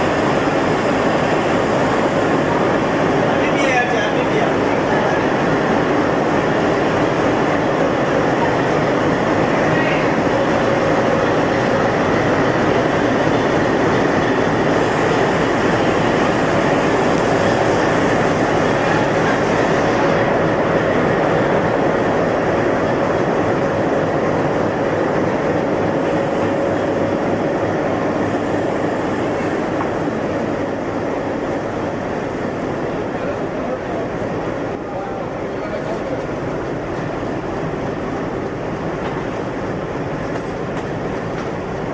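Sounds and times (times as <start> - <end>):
locomotive engine drone: 0.0 - 41.9.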